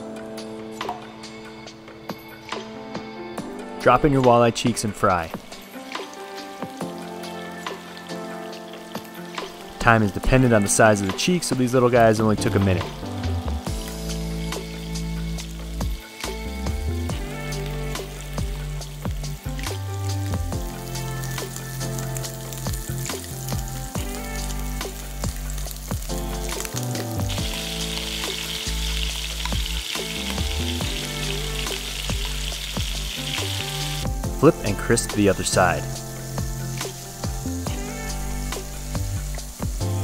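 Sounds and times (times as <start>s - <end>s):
fish sizzling in a pan: 5.5s - 10.3s, 13.2s - 40.0s
lo-fi music with bass line: 6.6s - 40.0s.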